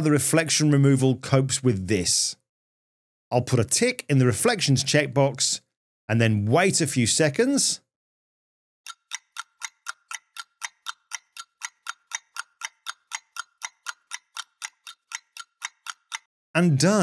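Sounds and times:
clock ticking: 0:08.9 - 0:16.3.

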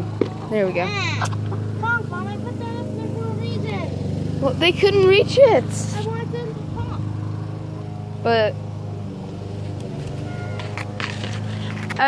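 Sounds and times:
lawn mower engine humming: 0:00.0 - 0:12.0.

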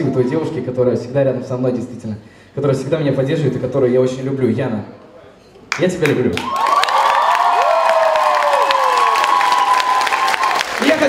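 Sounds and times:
audience applauding and cheering: 0:06.0 - 0:11.0.

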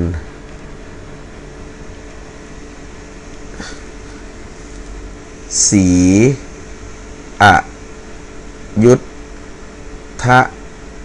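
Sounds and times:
man's voice syllables: 0:00.0 - 0:00.3, 0:05.5 - 0:06.4, 0:07.4 - 0:07.8, 0:08.8 - 0:09.1, 0:10.2 - 0:10.6
faint room hum: 0:00.0 - 0:11.0.

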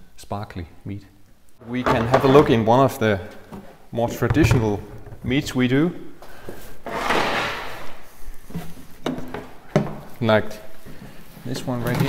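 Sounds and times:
scraping on plastic barrel: 0:01.7 - 0:02.7.

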